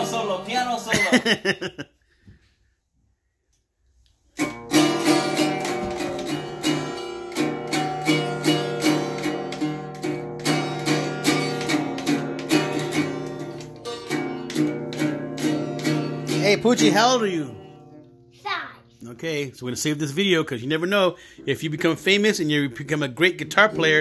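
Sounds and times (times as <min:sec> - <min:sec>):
acoustic guitar strummed: 0:00.0 - 0:00.9, 0:04.4 - 0:19.0, 0:21.2 - 0:24.0.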